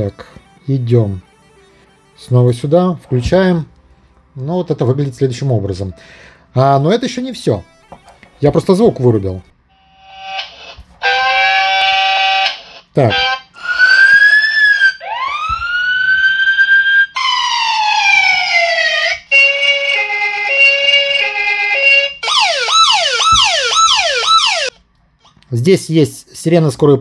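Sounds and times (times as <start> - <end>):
two-tone hi-lo siren: 0.0 - 2.6, 9.7 - 24.8
horn-like chord: 0.0 - 3.8
winding siren wail: 9.8 - 24.8
fast repeating yelp siren: 13.1 - 24.7
rising and falling tone: 13.6 - 19.0.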